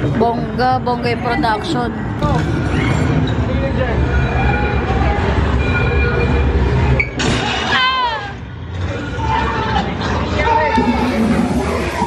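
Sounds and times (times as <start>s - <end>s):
low rumble: 10.7s - 12.0s.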